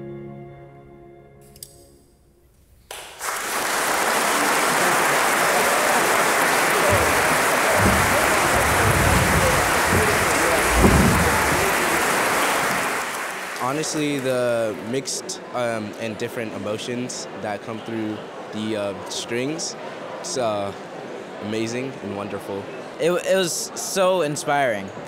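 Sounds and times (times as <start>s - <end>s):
audience applause: 2.9s - 15.3s
low thumps: 5.8s - 13.1s.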